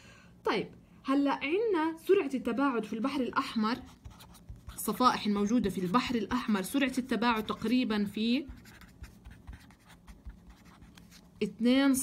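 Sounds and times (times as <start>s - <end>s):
pen scratching on paper: 3.8s - 5.4s, 7.3s - 11.3s.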